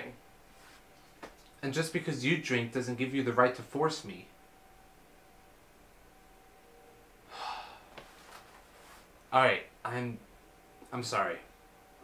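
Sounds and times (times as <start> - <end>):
faint steady hum: 0.0 - 12.0
person sighing: 7.3 - 8.0.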